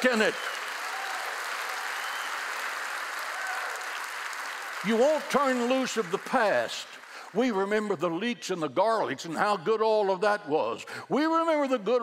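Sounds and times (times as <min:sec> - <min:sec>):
large audience applauding: 0:00.0 - 0:08.0.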